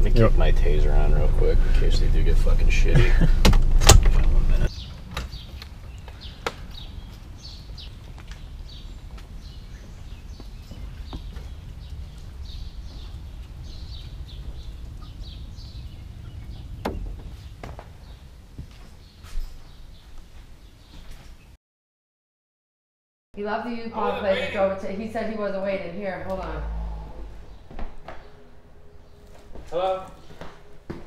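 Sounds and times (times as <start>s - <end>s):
low steady rumble: 0.0s - 4.7s, 23.6s - 29.7s
small birds chirping: 4.6s - 21.6s.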